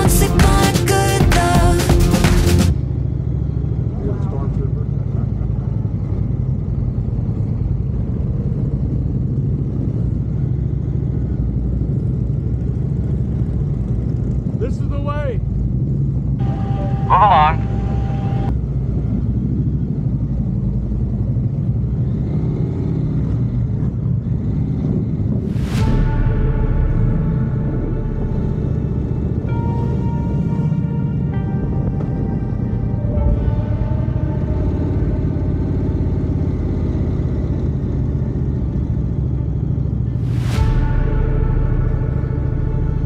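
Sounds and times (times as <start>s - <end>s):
motorcycle engine rumble: 0.0s - 43.0s
short tonal sound: 25.6s - 37.1s, 40.0s - 43.0s.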